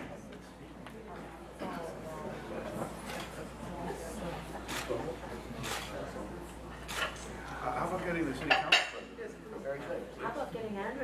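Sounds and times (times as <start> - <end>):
murmur of voices: 0.0 - 11.0
tableware clinking: 8.4 - 9.1.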